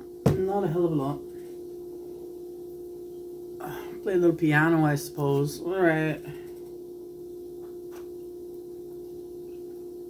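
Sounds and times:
steady mid-pitched hum: 0.0 - 10.0.

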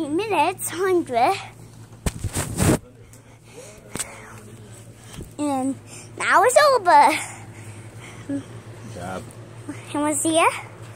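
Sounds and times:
steady low hum: 0.0 - 10.9.

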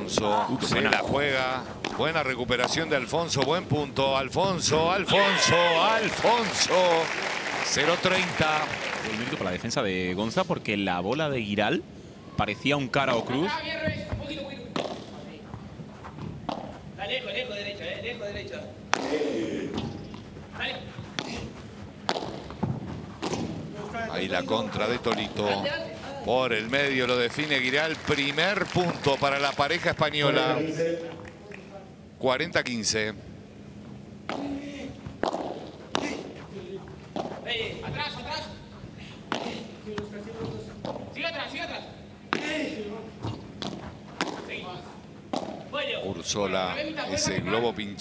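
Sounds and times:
rackets striking ball: 0.0 - 4.0, 13.2 - 15.3, 16.2 - 16.8, 18.8 - 25.6, 34.2 - 38.0, 39.2 - 41.2, 42.2 - 45.8
voices: 17.0 - 21.7
padel ball hit by rackets: 22.0 - 23.7, 34.3 - 36.3, 39.3 - 39.6, 43.6 - 44.6, 45.3 - 45.7.

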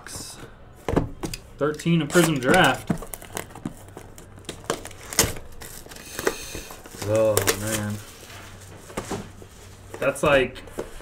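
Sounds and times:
plastic shrink wrap crinkling: 2.1 - 8.8.

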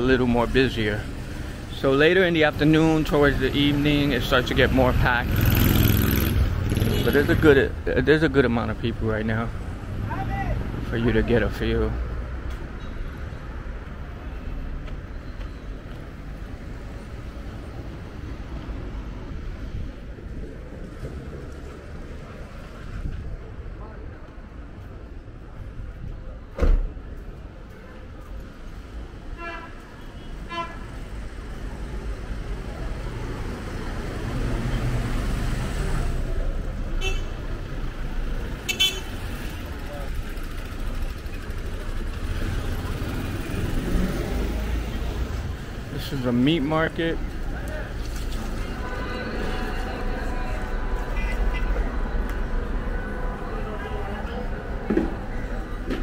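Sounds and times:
rumble of passing cars: 0.0 - 56.0
car horn toots: 38.7 - 39.1, 48.6 - 54.0.

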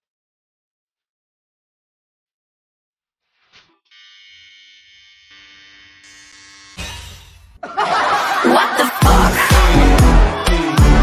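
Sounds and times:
electric hair clipper buzz: 3.6 - 7.5.

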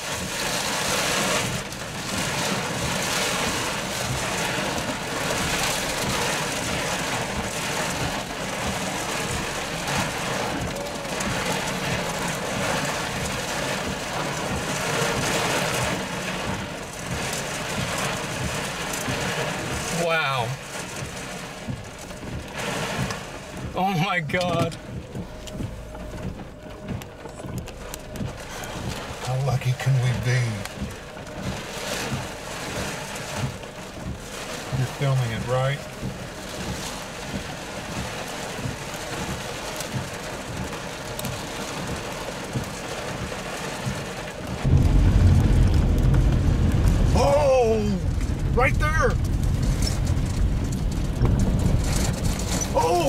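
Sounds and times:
strong wind and rain rushing: 0.0 - 53.0
low hum: 24.7 - 29.5
heavy low noise: 44.6 - 53.0.

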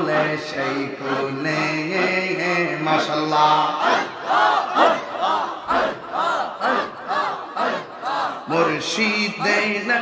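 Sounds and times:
crowd of men chanting: 0.0 - 9.7.

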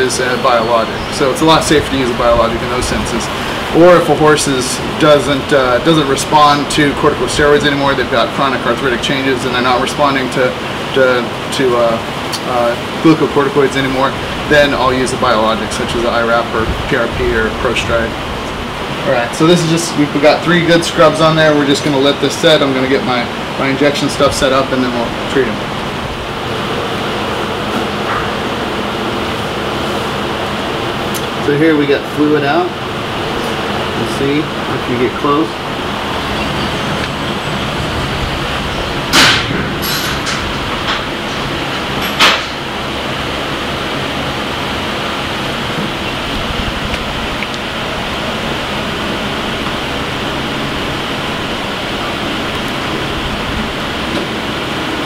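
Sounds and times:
electric drum fan running: 0.0 - 55.0
steady rushing noise: 0.0 - 55.0.

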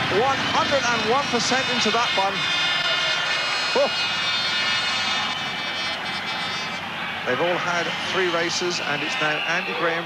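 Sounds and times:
motorcycle engines running high: 0.0 - 8.6.

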